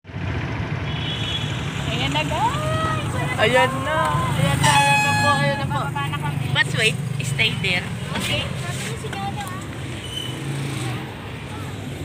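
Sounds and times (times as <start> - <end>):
vehicle engine humming: 0.1 - 12.0
vehicle horn blast: 0.9 - 1.6, 4.5 - 5.8
voices: 1.8 - 12.0.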